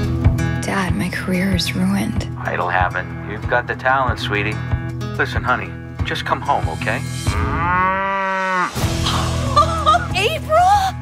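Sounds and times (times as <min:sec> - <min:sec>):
cow mooing: 0:07.3 - 0:08.8.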